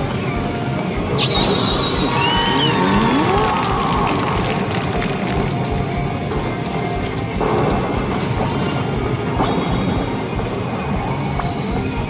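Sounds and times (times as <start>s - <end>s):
sweeping gliding tones: 1.1s - 6.2s
arcade machine music: 1.1s - 7.6s.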